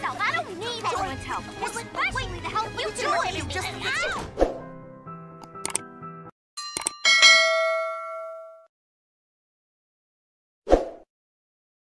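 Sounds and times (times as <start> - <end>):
music: 0.0 - 6.9
mouse clicks: 5.4 - 5.8
notification bell ding: 6.6 - 8.7.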